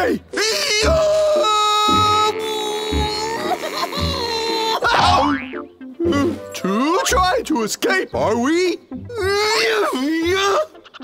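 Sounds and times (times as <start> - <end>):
comic cartoon music: 0.3 - 11.0.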